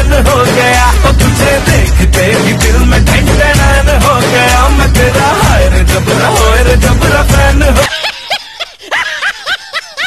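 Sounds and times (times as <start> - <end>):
music: 0.0 - 7.9
rapid snickering laugh: 7.8 - 10.0.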